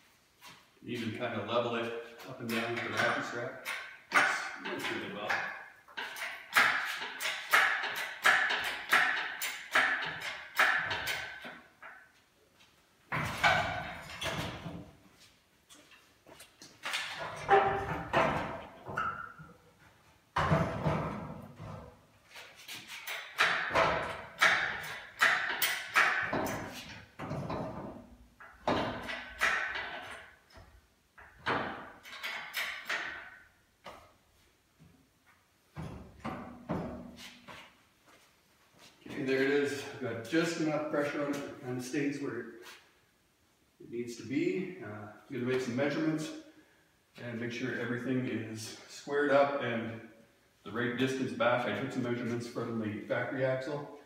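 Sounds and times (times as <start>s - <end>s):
metal knocks: 2.5s - 12.0s, 17.0s - 19.6s, 23.0s - 34.0s.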